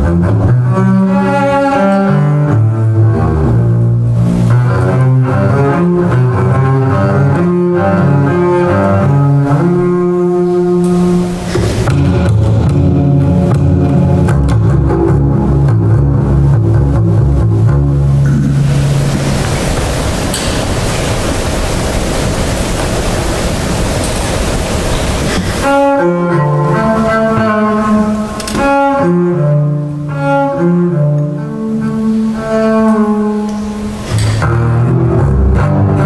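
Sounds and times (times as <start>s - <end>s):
bowed double bass: 0.0s - 36.0s.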